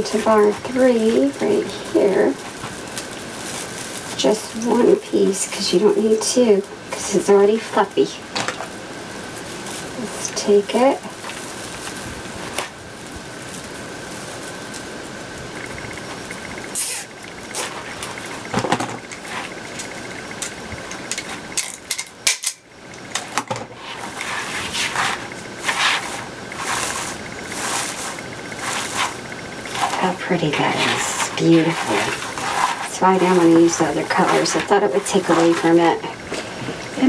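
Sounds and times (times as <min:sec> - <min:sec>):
plastic mesh rustling and crinkling: 0:00.0 - 0:22.2, 0:22.8 - 0:37.0.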